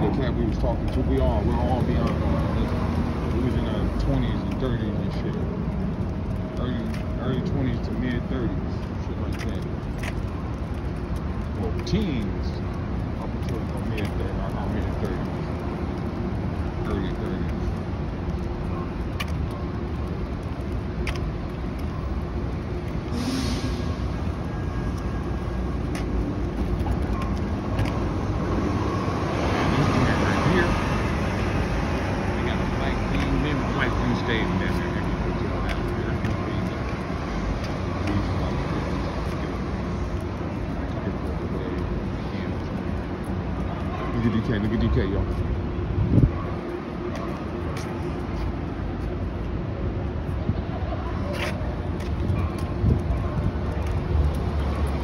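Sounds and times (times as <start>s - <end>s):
street traffic noise: 0.0s - 55.0s
brief hiss: 23.1s - 24.0s
vehicle passing by: 25.2s - 41.8s.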